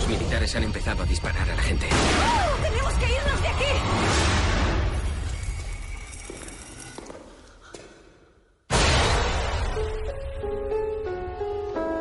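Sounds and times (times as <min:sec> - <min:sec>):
loud impact hit: 0:08.7 - 0:09.8.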